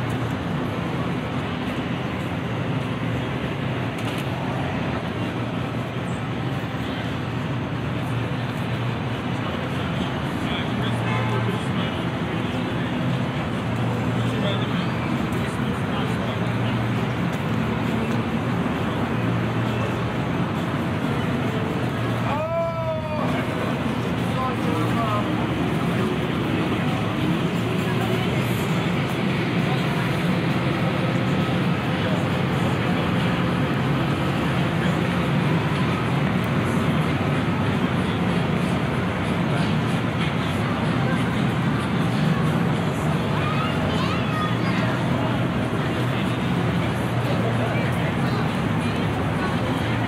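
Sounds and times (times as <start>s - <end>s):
people chattering: 0.0s - 50.0s
traffic hum: 0.0s - 50.0s.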